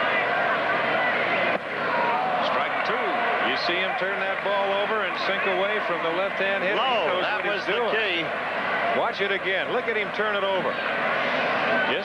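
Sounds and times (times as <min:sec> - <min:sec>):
crowd of voices: 0:00.0 - 0:12.0.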